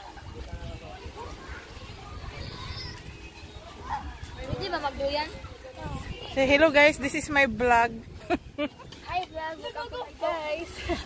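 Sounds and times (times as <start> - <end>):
children calling: 1.0 - 6.4.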